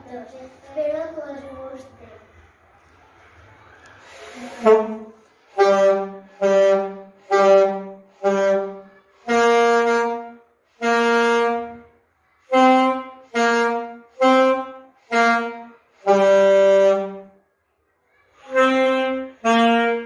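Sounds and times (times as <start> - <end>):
two saxophones playing melody: 4.6 - 11.8, 12.4 - 17.3, 18.5 - 20.0.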